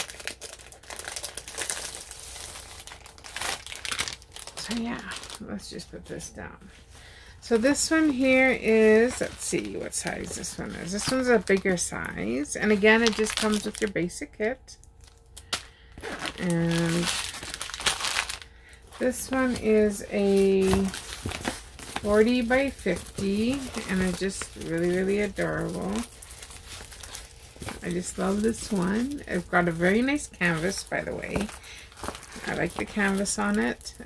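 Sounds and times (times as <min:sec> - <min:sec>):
plastic packaging crinkling: 0:00.0 - 0:06.1, 0:07.5 - 0:14.2, 0:14.8 - 0:34.0.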